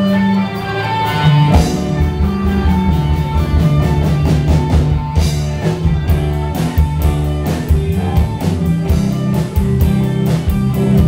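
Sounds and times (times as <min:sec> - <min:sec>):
bass guitar: 0:00.0 - 0:11.0
drum kit with cymbal strikes: 0:00.0 - 0:11.0
electric guitar: 0:00.0 - 0:11.0.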